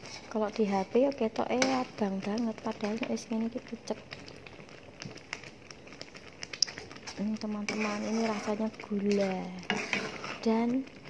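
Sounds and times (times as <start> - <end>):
metal spoon in a pan: 0.0 - 3.3, 5.3 - 11.0
jam bubbling in a pan: 0.0 - 11.0.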